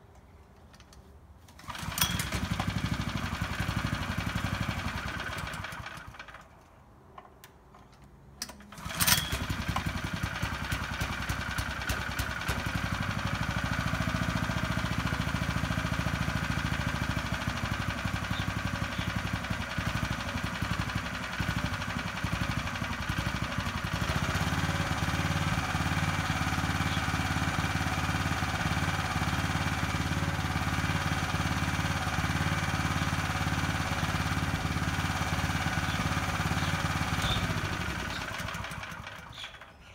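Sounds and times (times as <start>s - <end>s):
lawn mower engine running: 1.5s - 6.7s, 8.4s - 39.9s
pull cord starting engine: 1.5s - 6.7s, 8.4s - 39.9s.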